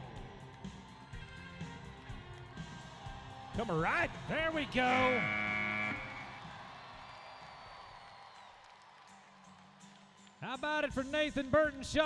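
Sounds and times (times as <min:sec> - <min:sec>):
faint background music: 0:00.0 - 0:08.3
arena ambience: 0:03.6 - 0:06.5.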